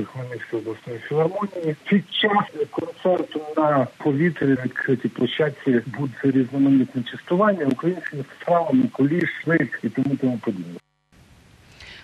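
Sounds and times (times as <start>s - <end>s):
man speaking over telephone: 0.0s - 10.8s.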